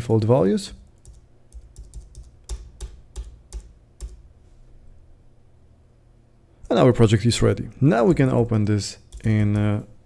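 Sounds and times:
keyboard key presses: 1.0 - 4.2.

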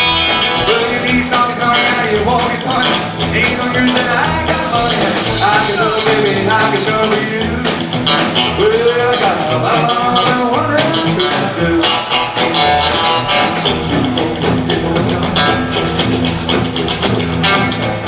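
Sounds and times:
drums: 0.0 - 18.0
electric bass: 0.0 - 18.0
electric guitar with bent notes: 0.0 - 18.0.

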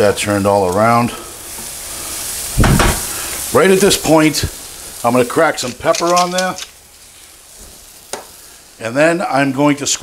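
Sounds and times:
food sizzling in a pan: 0.0 - 10.0.

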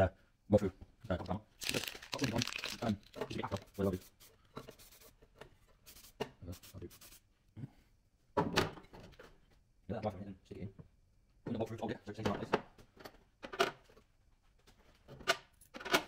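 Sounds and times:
rustling and clicking handling noises: 1.2 - 3.8.

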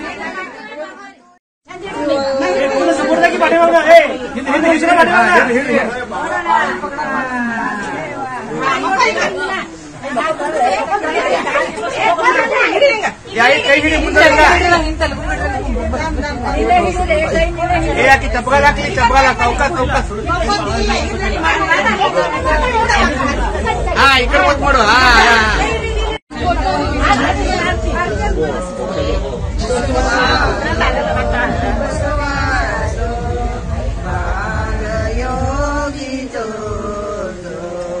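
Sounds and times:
women chattering: 0.0 - 5.0, 5.8 - 34.4
women singing a chant: 25.6 - 38.0.

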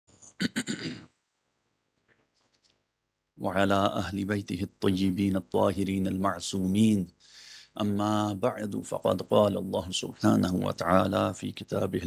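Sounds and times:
man clearing his throat: 0.4 - 1.1.

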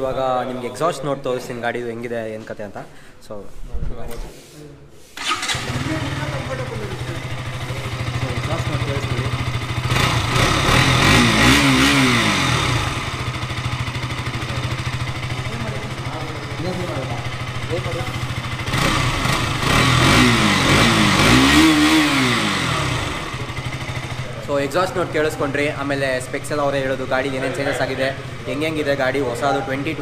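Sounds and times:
motorcycle engine idling and revving: 5.2 - 30.0.

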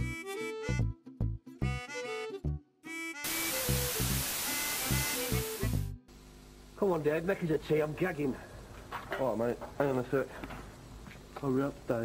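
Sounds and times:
television static hiss: 3.3 - 10.3, 11.0 - 12.0.

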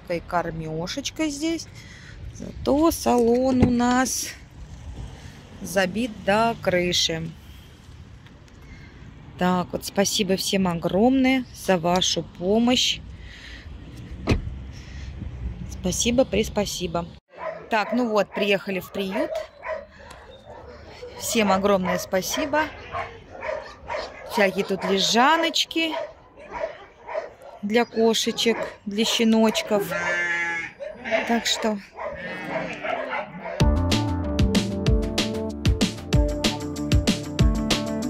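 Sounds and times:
dogs whining and yipping: 17.3 - 30.2, 30.8 - 31.0, 31.6 - 33.6
music with a steady beat: 33.6 - 38.0.

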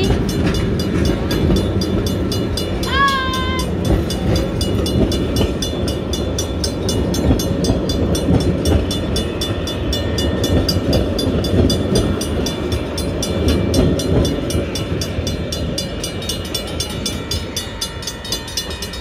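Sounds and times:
crossing bells ringing: 0.0 - 19.0
train rumbling past: 0.0 - 19.0.

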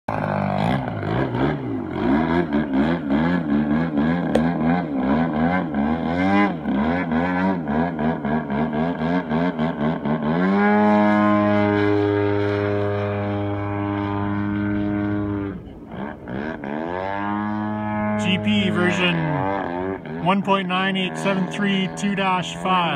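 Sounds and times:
model plane engine: 0.1 - 22.9.

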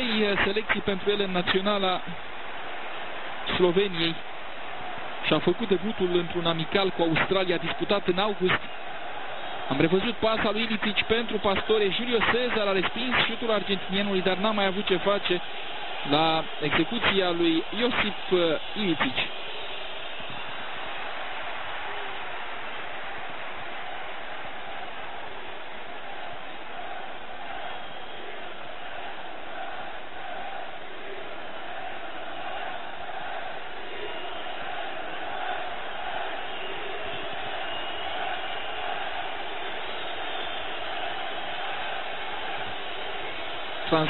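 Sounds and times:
stadium crowd din: 0.0 - 44.0.

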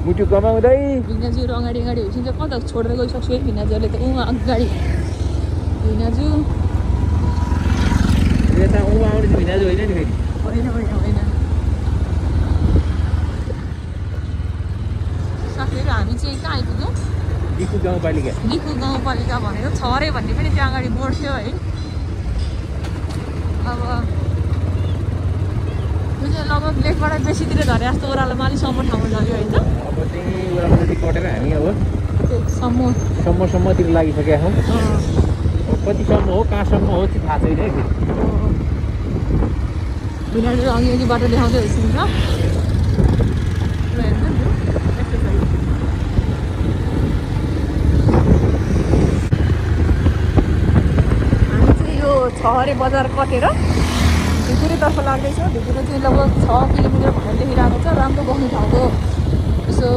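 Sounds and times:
motorcycle engine and road noise: 0.0 - 59.9
wind buffeting microphone: 5.3 - 59.9.

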